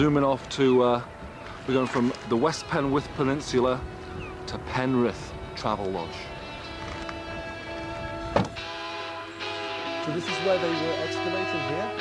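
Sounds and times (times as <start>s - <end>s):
background music of sustained tones: 0.0s - 12.0s
vehicle rear door thump: 8.3s - 8.6s.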